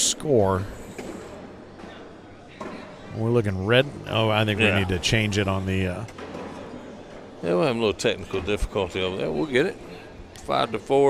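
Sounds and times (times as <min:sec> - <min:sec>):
indoor hall background noise: 0:00.0 - 0:11.0.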